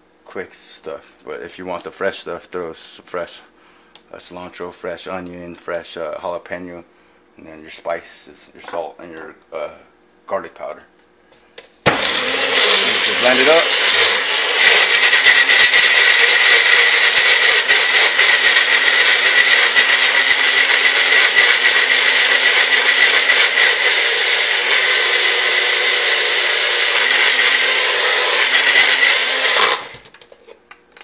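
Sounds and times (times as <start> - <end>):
blender running with high whine: 11.9 - 30.1.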